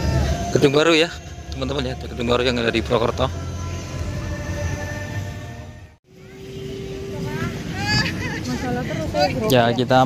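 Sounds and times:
people's voices: 0:06.1 - 0:10.0.

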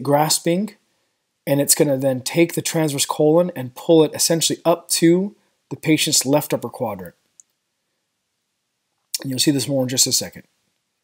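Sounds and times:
narrator speaking: 0:09.2 - 0:10.5.

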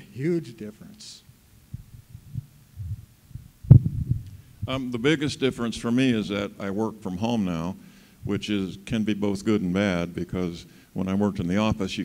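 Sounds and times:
microphone handling thumps: 0:01.7 - 0:04.8.

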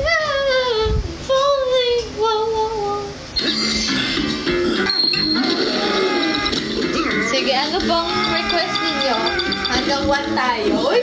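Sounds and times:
woman singing unaccompanied: 0:00.0 - 0:03.2.

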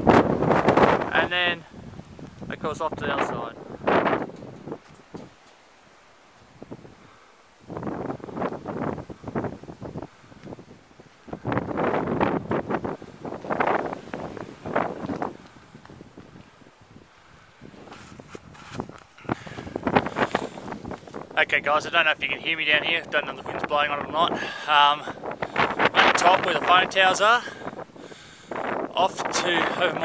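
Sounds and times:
wind gusting over microphone: 0:00.0 - 0:05.5, 0:06.4 - 0:30.0.

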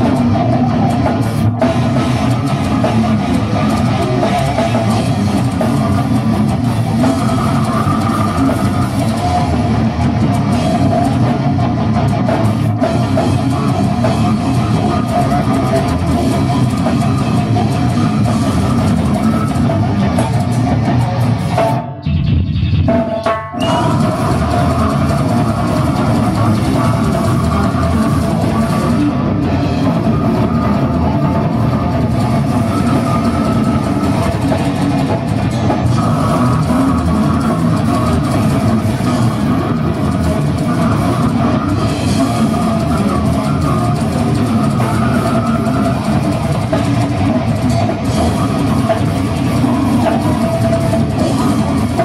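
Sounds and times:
death metal band playing live: 0:00.0 - 0:52.0
distorted guitars: 0:00.0 - 0:52.0
drum kit: 0:00.0 - 0:52.0.

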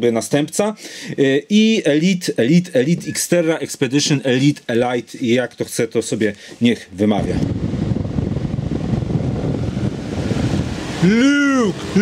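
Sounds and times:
fan airflow rushing noise: 0:06.1 - 0:12.0.

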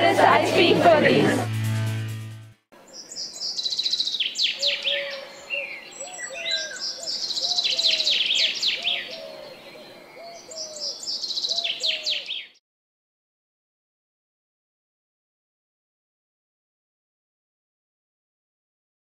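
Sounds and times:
music track: 0:00.0 - 0:02.7
high downward-sweeping bird chirps: 0:02.9 - 0:09.3.

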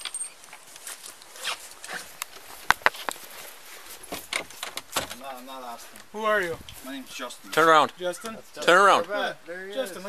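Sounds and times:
handling scraping and rustling: 0:00.0 - 0:07.6.

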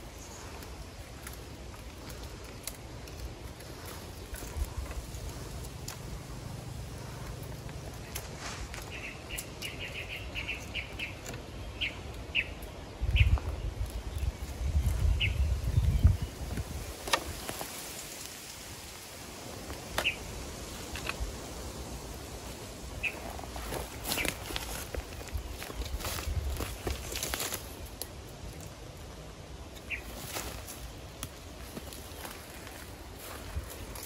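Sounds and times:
dry leaves crackling: 0:00.0 - 0:34.0
small bird chirping: 0:02.0 - 0:16.6, 0:23.0 - 0:27.3.

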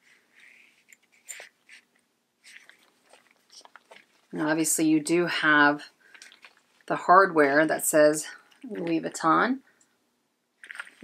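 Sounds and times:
fabric rustling: 0:00.0 - 0:04.6.

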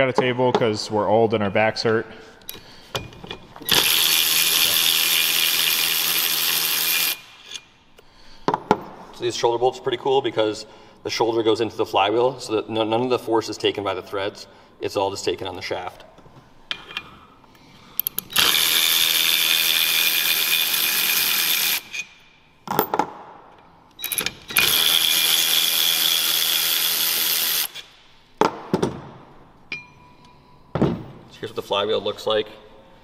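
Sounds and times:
electric ratchet whine and buzz: 0:03.6 - 0:07.7, 0:18.2 - 0:22.1, 0:24.0 - 0:27.9.

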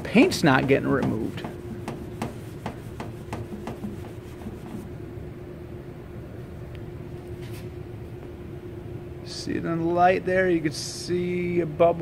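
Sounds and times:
steady low hum: 0:00.0 - 0:12.0
rag wiping car panel: 0:00.1 - 0:04.9.

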